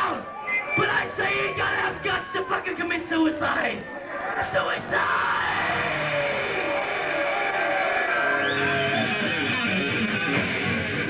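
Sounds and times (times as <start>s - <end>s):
crowd noise: 0.0s - 11.0s
heavy metal band playing: 4.8s - 11.0s.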